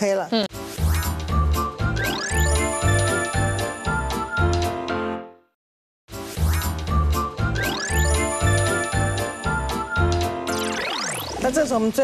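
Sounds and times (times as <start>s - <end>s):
upbeat jingle music: 0.8s - 5.4s, 6.5s - 11.8s
chiming tinkles: 2.1s - 4.4s, 7.6s - 11.3s.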